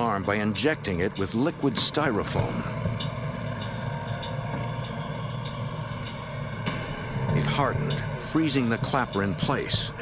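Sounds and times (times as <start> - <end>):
low droning hum: 0.0 - 10.0.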